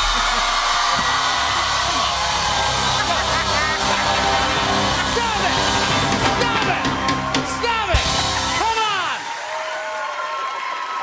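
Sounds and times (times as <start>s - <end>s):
audience cheering and applauding: 0.0s - 11.0s
person laughing: 2.9s - 6.1s.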